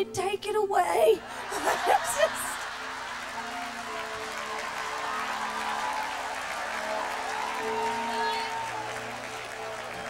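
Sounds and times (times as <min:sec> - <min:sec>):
crowd laughter: 0:01.2 - 0:04.0.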